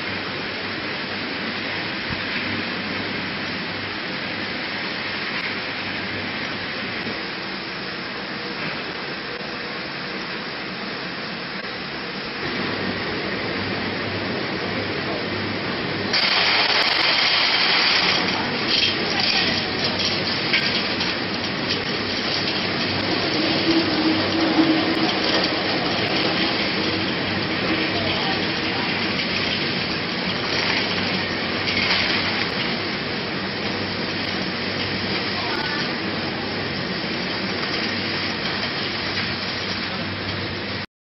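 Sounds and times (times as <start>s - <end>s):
peanuts rattling in a metal drum: 16.2s - 32.9s.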